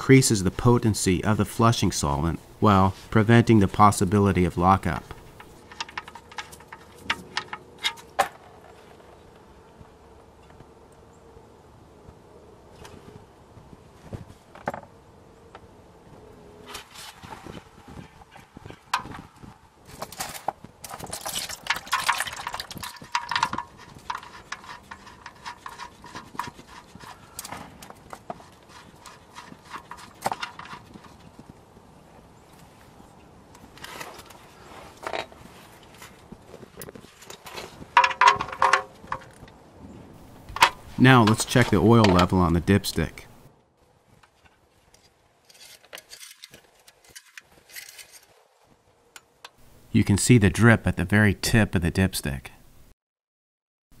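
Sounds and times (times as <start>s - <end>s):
oil splashing into drain pan: 21.1s - 25.4s.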